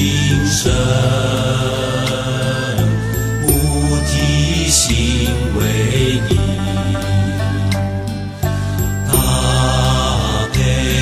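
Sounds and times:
chanting over low sustained notes: 0.0 - 8.2, 9.0 - 11.0.

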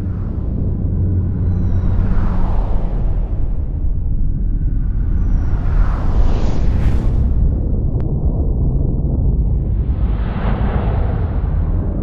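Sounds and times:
deep rumbling drone: 0.0 - 12.0.

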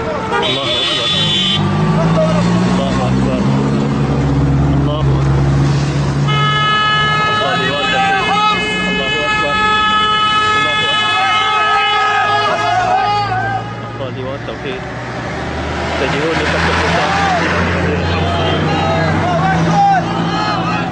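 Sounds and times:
vehicle horns honking: 0.0 - 1.8, 6.2 - 14.2, 18.0 - 20.9
truck engines: 0.0 - 20.9
voices shouting: 6.6 - 14.0, 16.5 - 20.9.

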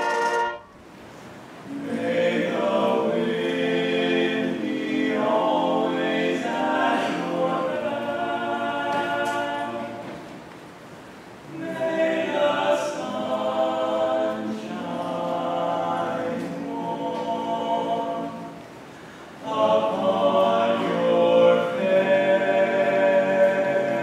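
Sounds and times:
choir singing a cappella: 1.6 - 10.4, 11.4 - 24.0.

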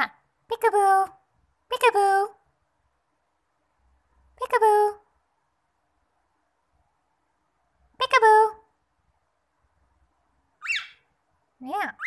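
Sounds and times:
cockatiel whistled chirp: 10.6 - 11.0.

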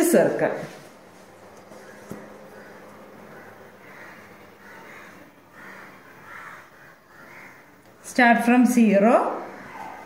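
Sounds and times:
faint bird calls: 1.6 - 7.8, 9.4 - 10.0.

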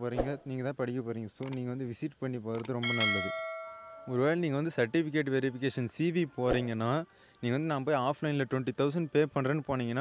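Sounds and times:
person speaking: 0.4 - 4.8
bright bell chime: 2.8 - 4.5.

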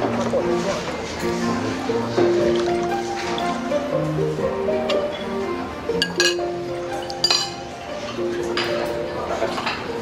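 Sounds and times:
background music: 0.0 - 10.0
utensils clinking against dishes: 6.0 - 10.0.

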